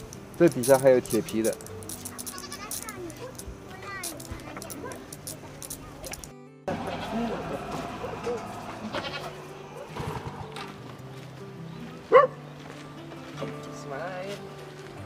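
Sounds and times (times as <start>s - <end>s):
goat bleating: 2.1s - 2.8s, 6.7s - 10.0s.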